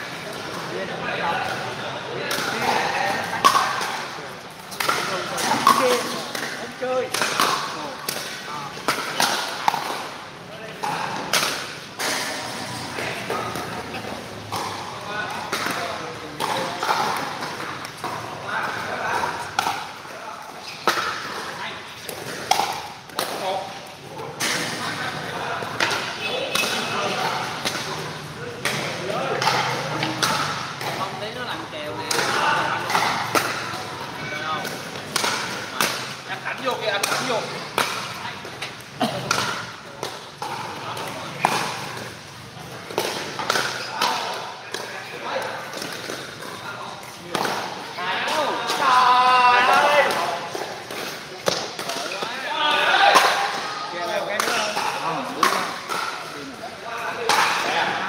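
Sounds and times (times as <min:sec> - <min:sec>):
people talking: 0:00.2 - 0:22.6, 0:23.2 - 0:58.0
paddles hitting plastic ball: 0:02.3 - 0:12.4, 0:13.0 - 0:20.2, 0:20.8 - 0:23.8, 0:32.1 - 0:48.9, 0:49.6 - 0:56.4.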